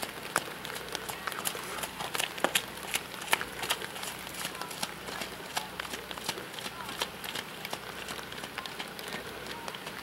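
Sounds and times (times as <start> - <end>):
horse trotting on wet sand: 0.0 - 10.0
sharp drip ticks: 0.0 - 10.0.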